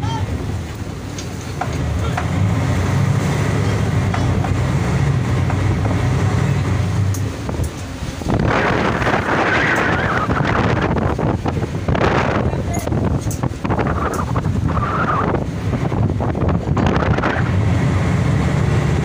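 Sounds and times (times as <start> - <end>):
boat engine humming: 0.0 - 19.0
breaking waves: 0.0 - 19.0
sea wash: 0.0 - 19.0
wind on microphone: 0.0 - 19.0.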